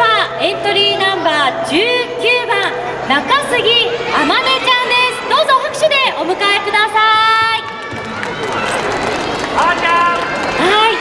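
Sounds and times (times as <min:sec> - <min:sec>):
audience applause: 0:07.6 - 0:11.0.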